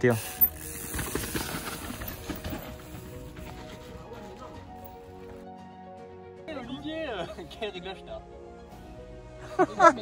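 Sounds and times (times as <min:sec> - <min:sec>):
background music: 0:00.0 - 0:10.0
mountain bike clattering downhill: 0:00.1 - 0:05.4.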